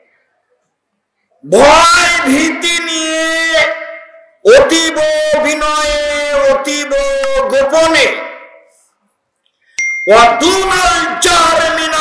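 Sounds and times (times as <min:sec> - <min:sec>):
man speaking over public address: 0:01.4 - 0:08.7, 0:10.0 - 0:12.0
high bell ding: 0:09.8 - 0:10.4.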